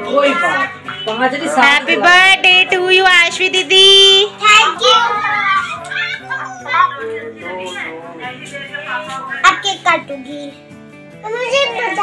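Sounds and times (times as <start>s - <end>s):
background music: 0.0s - 12.0s
children talking and calling out: 4.2s - 7.4s, 9.4s - 12.0s.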